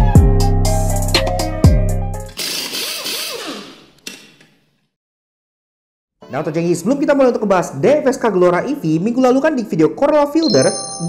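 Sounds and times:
hip-hop beat: 0.0s - 2.0s.

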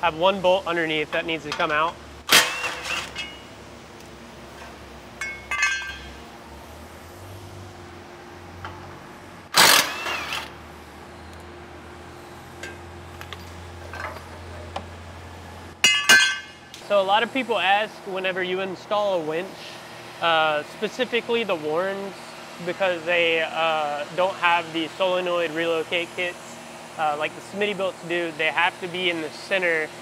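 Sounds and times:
impact wrench bursts: 9.5s - 10.6s.

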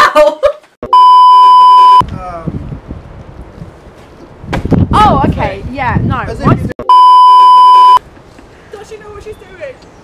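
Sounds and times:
electronic test tone beep: 0.9s - 2.0s, 6.8s - 8.0s.

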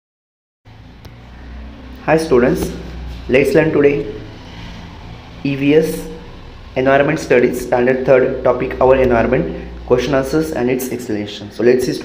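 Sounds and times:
low background hum: 0.7s - 12.0s.

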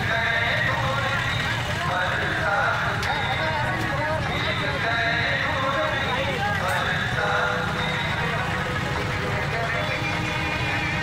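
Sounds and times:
crowd shouting and talking: 0.0s - 11.0s
motorcycle engines running: 0.0s - 11.0s.

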